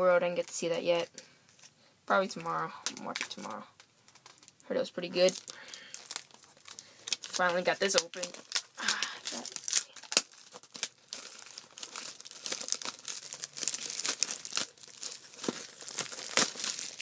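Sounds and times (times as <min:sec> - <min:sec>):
plastic shrink wrap crinkling and tearing: 0:02.3 - 0:17.0.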